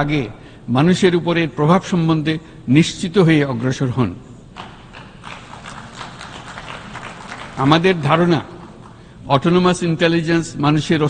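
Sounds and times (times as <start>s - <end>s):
scattered applause: 4.6s - 9.1s
person speaking: 7.6s - 11.0s.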